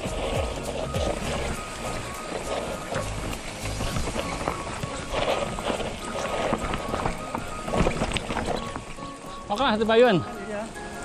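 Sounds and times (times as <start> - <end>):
faint background music: 0.0 - 11.0
mountain bike rattling on rocks: 0.0 - 11.0.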